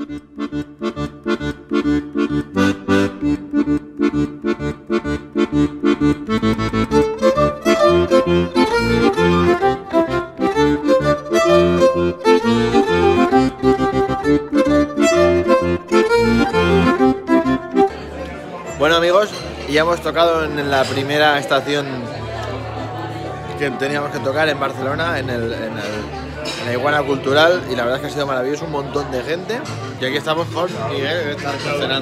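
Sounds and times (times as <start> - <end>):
accordion folk tune: 0.0 - 32.0.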